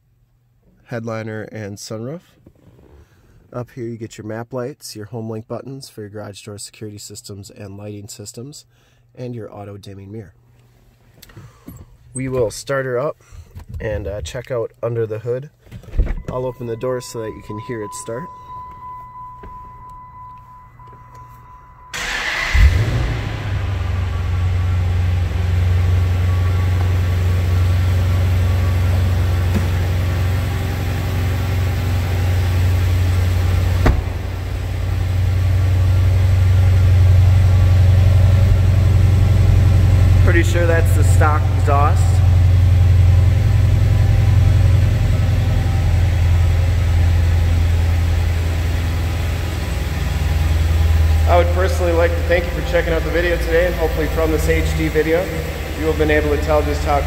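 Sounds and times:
car engine starting and idling: 15.6 - 57.0.

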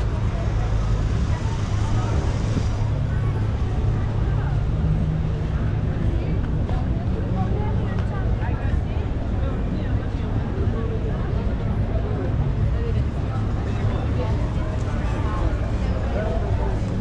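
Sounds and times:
chatter of passers-by: 0.0 - 17.0
low rumble of car traffic: 0.0 - 17.0.

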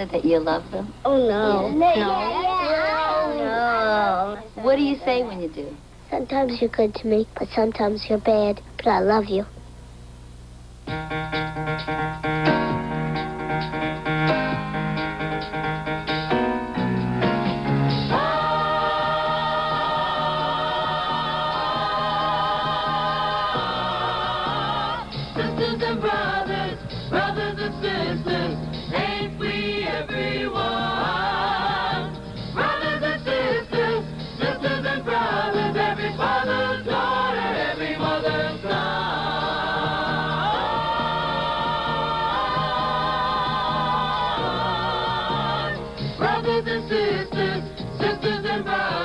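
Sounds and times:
instrumental backing: 10.8 - 49.0
group of voices singing: 18.0 - 49.0.

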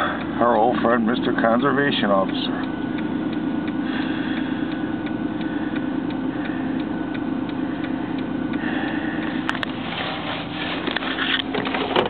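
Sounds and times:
car engine idling: 0.0 - 12.0
regular ticking: 0.0 - 12.0.

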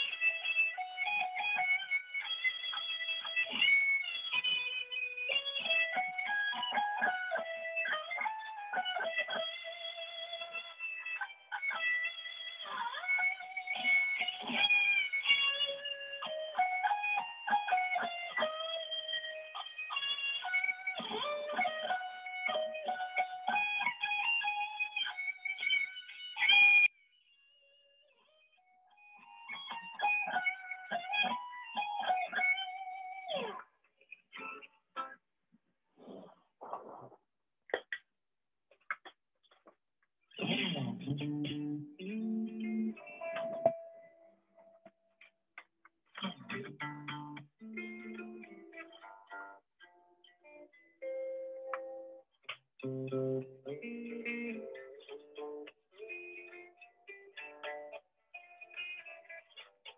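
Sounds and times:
electric guitar melody: 0.0 - 26.9, 27.6 - 33.7, 34.3 - 35.2, 40.4 - 44.9, 46.1 - 59.9.

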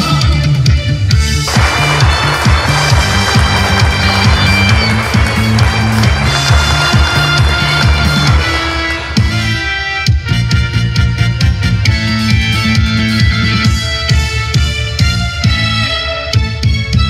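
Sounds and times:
instrumental backing track: 0.0 - 17.0
dense noisy layer: 1.5 - 9.3
steady bass beat: 1.5 - 10.4.

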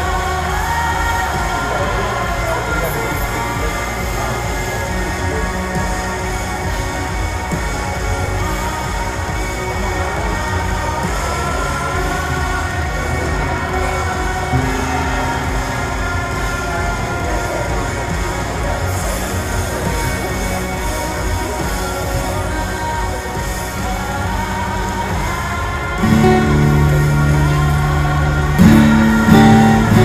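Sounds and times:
background music: 0.0 - 30.0
low pulsing bass: 0.0 - 30.0.

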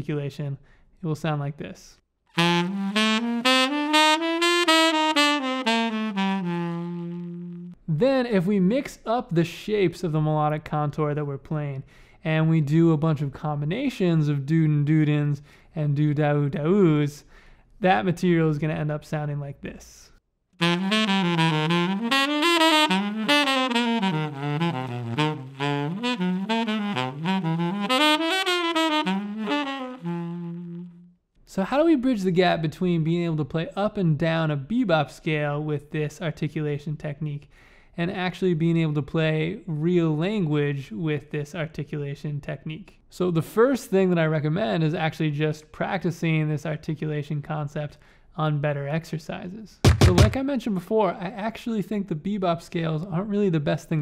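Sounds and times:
tenor saxophone playing scales: 2.4 - 7.8, 20.6 - 31.2.

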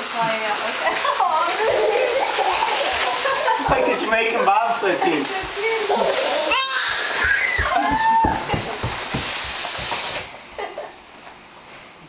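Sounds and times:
plastic basket scraping floor: 5.4 - 10.3
children's high voices: 5.6 - 8.4.

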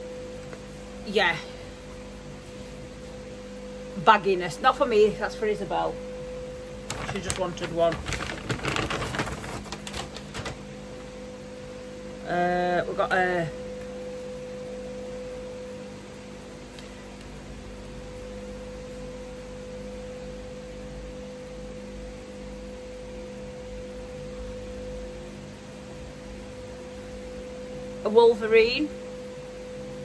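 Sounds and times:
background hum with held tone: 0.0 - 30.0.

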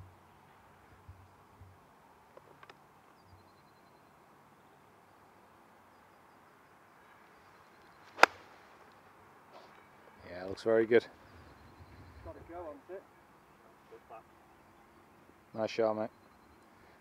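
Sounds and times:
golf iron striking ball: 8.1 - 8.5.

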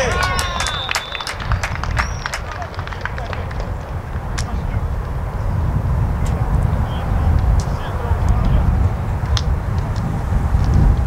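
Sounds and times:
distant players' voices: 0.0 - 11.0.

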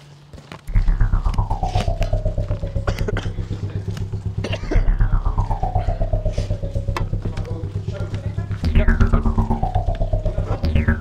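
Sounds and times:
jaw harp twanging drone: 0.7 - 11.0.

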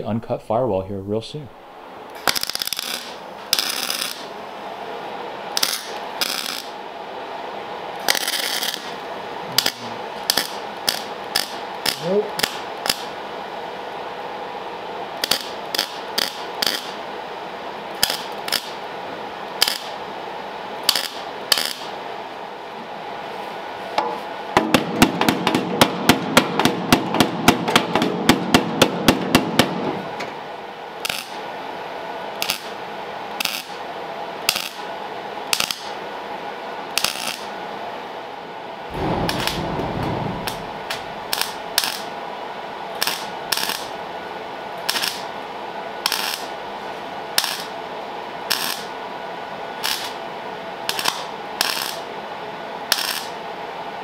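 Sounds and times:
low thud: 38.9 - 41.8.

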